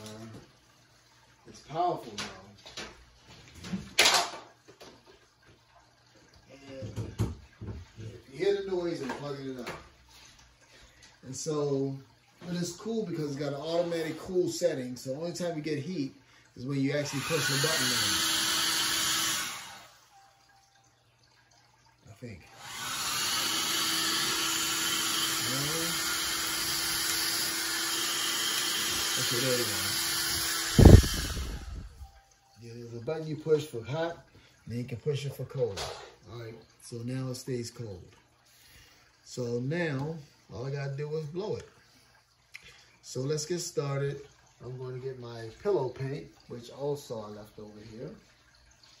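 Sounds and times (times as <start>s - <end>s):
hair dryer running: 17.0s - 20.0s, 22.6s - 32.0s.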